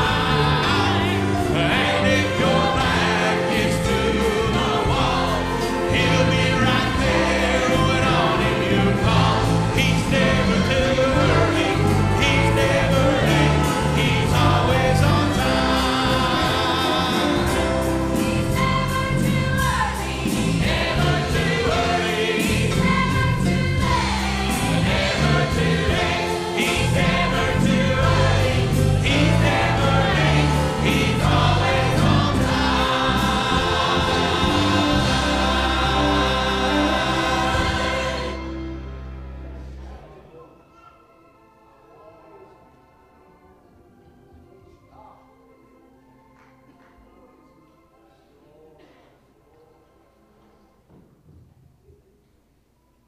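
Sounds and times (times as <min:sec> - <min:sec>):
church choir singing gospel: 0:00.0 - 0:51.0.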